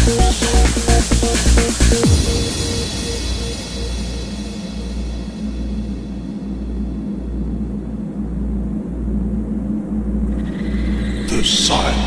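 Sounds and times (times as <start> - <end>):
low synth bass drone: 0.0 - 11.3
steady held synth tone: 0.0 - 12.0.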